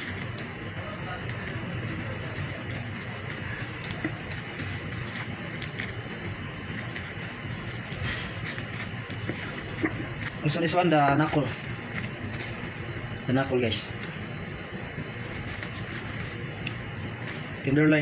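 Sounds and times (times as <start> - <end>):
kitchen refrigeration hum: 0.0 - 18.0.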